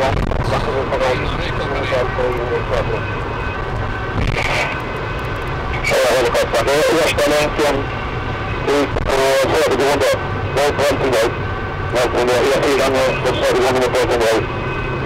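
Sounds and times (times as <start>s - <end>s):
car engine and road rumble: 0.0s - 15.0s.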